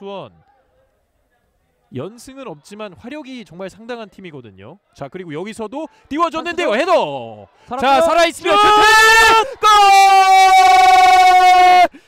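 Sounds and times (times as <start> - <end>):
man shouting goal: 7.8 - 12.0.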